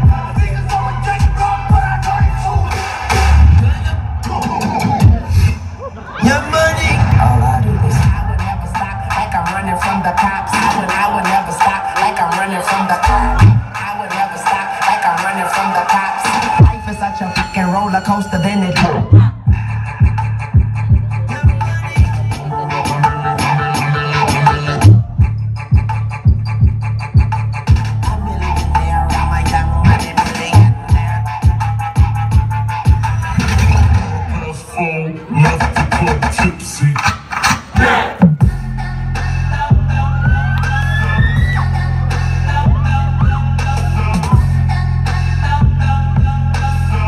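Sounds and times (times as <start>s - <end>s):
heavy bass with rising sweep: 0.0s - 17.9s, 18.5s - 37.6s, 38.4s - 47.0s
hip hop mix over loudspeakers: 0.0s - 47.0s.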